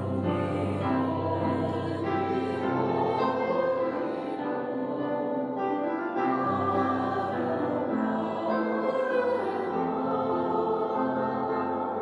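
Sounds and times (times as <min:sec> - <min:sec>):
group singing a slow hymn: 0:00.0 - 0:12.0.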